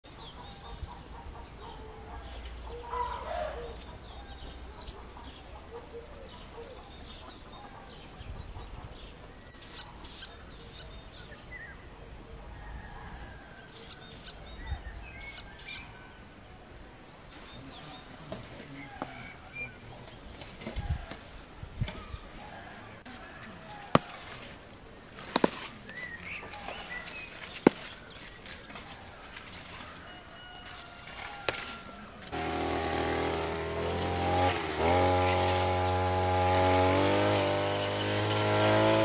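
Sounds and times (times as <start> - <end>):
songbirds chirping and singing: 0.0 - 32.4.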